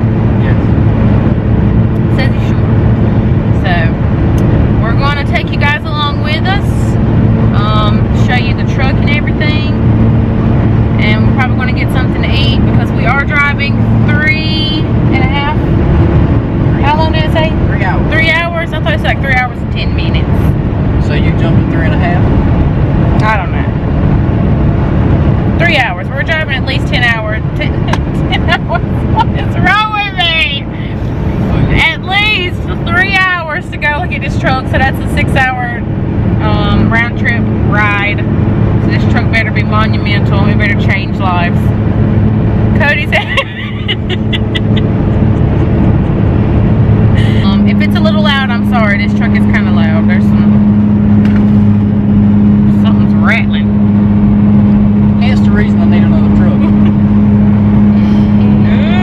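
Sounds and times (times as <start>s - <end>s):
truck engine and road drone: 0.0s - 59.0s
person talking: 58.0s - 59.0s.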